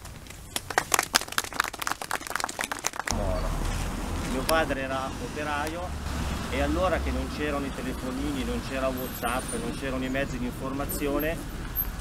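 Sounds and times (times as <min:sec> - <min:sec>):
small crowd applauding: 0:00.0 - 0:03.2.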